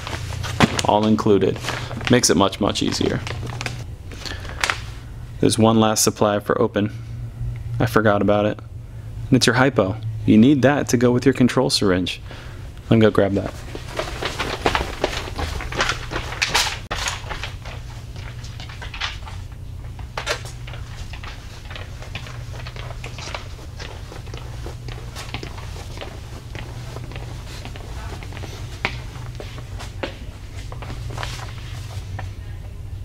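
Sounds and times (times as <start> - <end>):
low room hum: 0.0 - 33.0
footsteps on hard floor: 13.5 - 18.6, 20.0 - 32.3.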